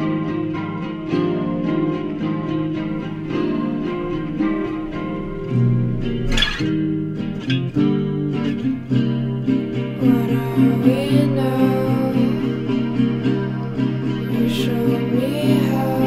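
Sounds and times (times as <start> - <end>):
high held wavering tone: 0.0 - 16.0
plucked guitar notes: 0.0 - 16.0.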